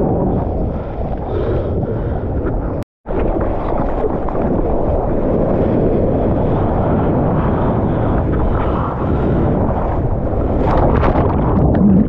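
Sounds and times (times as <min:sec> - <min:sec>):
wind buffeting microphone: 0:00.0 - 0:12.0
water rushing and splashing: 0:03.1 - 0:12.0.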